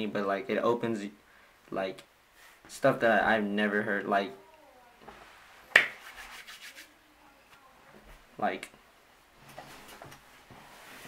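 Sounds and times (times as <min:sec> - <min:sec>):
hands rubbing together: 0:05.7 - 0:07.0.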